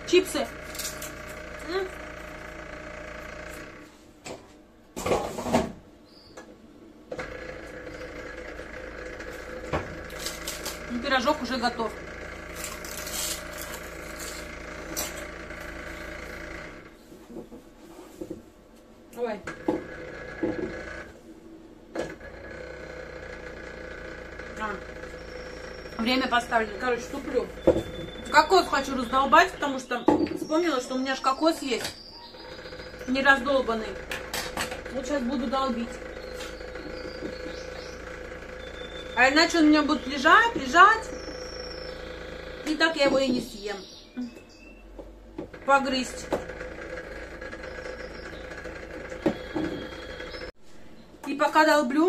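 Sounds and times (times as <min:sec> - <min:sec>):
kitchen appliance hum: 0:00.0 - 0:51.7.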